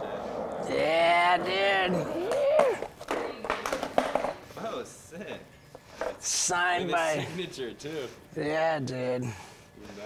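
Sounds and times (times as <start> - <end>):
skateboard clacking on concrete: 2.1 - 4.4.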